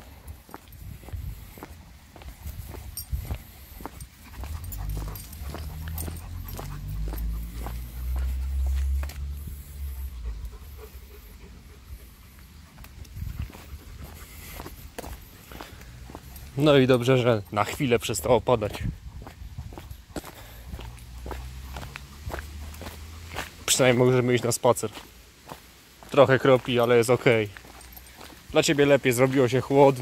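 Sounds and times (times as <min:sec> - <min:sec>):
dog sniffing: 0:03.4 - 0:12.8.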